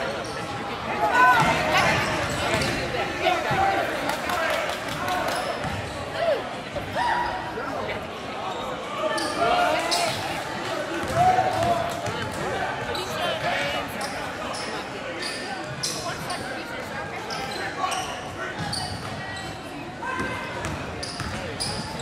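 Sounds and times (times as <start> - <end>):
sneakers squeaking: 0.0 - 0.6, 1.4 - 2.9, 5.3 - 7.4, 11.0 - 22.0.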